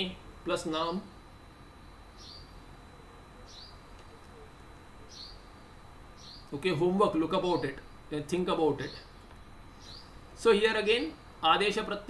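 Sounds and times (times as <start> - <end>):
bird chirping: 2.1 - 2.7, 3.4 - 6.6, 8.8 - 10.3.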